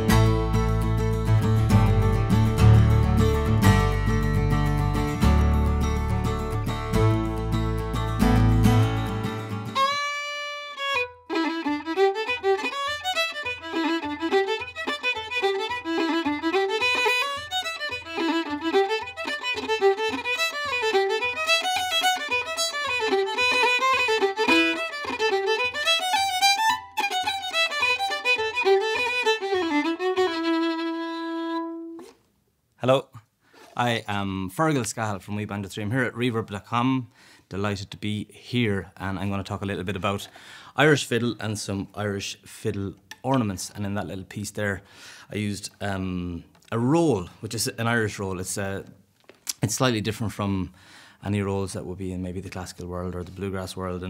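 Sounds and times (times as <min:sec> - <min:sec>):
deep bass line: 0:00.0 - 0:09.7
acoustic guitar picking and strumming: 0:00.0 - 0:10.3
fiddle playing fast tune: 0:00.0 - 0:32.1.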